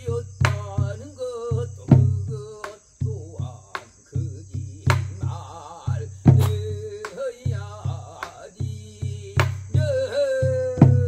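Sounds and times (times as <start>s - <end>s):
insects chirring: 0.0s - 11.0s
man singing folk song: 0.0s - 11.0s
barrel drum strokes: 4.6s - 9.9s.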